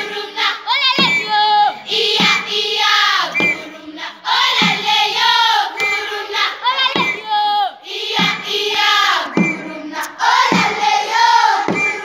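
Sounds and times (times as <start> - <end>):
low rhythmic thump: 0.0 - 7.3, 8.0 - 12.0
children singing folk song: 0.0 - 12.0.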